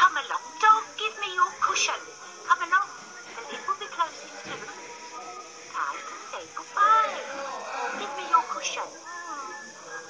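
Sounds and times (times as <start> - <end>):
children's tv music: 0.0 - 10.0.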